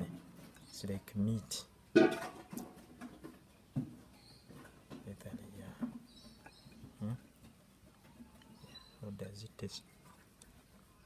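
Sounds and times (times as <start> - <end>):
small soft noises: 2.4 - 11.0.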